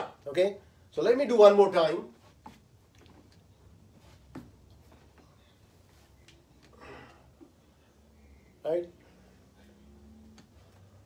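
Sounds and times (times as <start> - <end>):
soft rustle: 2.0 - 6.7.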